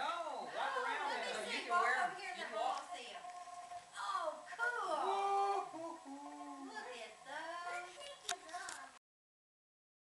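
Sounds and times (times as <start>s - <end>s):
other voices: 3.9s - 8.9s
young child sing-song vocalising: 4.8s - 9.0s.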